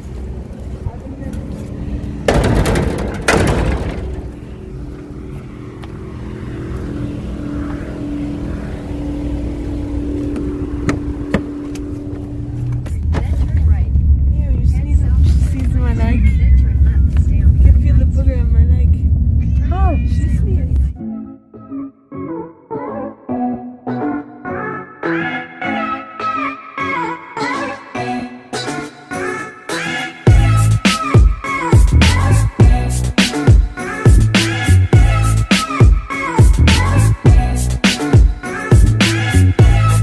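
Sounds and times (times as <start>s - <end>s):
car engine idling: 0.0s - 19.8s
deep rumble of car moving: 0.0s - 21.0s.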